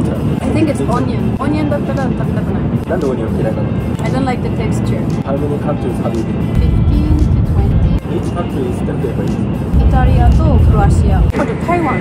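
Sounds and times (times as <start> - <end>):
background music: 0.0 - 12.0
people conversing: 0.0 - 12.0.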